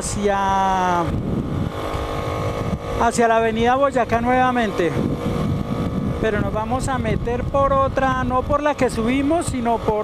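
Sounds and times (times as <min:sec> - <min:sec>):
motorcycle engine running: 0:00.0 - 0:10.0
wind rushing over microphone: 0:00.0 - 0:10.0.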